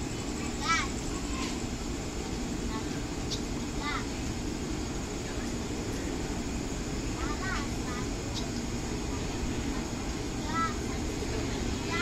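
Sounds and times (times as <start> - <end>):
electric train humming: 0.0 - 12.0.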